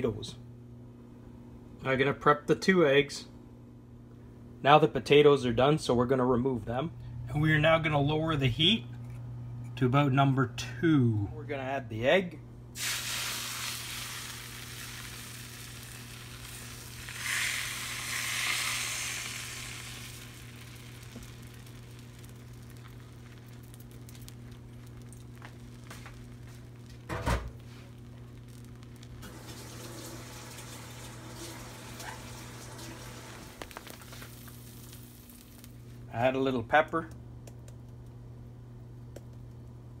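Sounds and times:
steady low hum: 0:00.0 - 0:29.6, 0:33.1 - 0:40.0
eggs sizzling in frying pan: 0:12.8 - 0:36.1.

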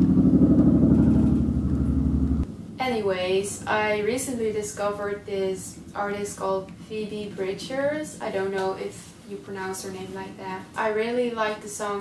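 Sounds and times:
helicopter rotor beating: 0:00.0 - 0:02.4.

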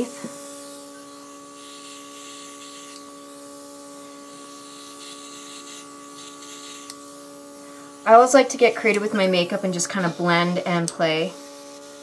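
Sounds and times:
airbrush spraying hiss: 0:00.0 - 0:12.0
compressor humming: 0:00.0 - 0:12.0.

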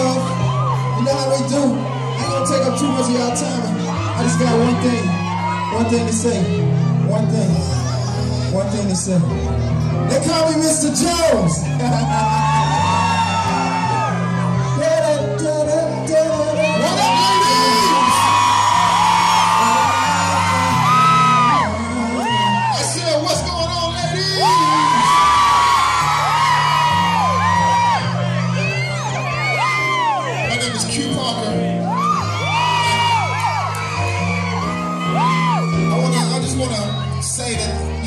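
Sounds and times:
crowd screaming and whooping: 0:00.0 - 0:38.0.

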